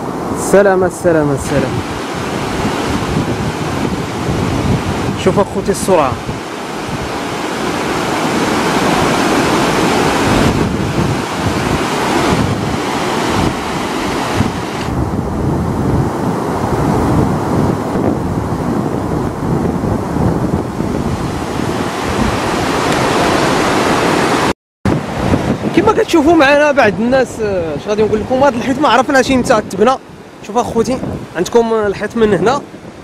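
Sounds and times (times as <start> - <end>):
floodwater rushing: 0.0 - 33.0.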